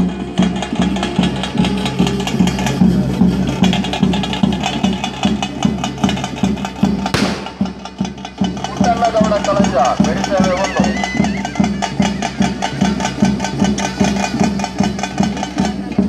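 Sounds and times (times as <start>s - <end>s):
low drum beat: 7.2s - 9.4s
fast stick-drum strokes: 7.2s - 10.7s.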